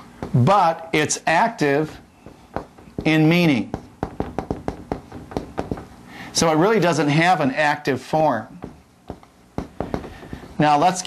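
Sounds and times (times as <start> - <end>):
writing taps on board: 2.2 - 5.9, 8.6 - 10.5.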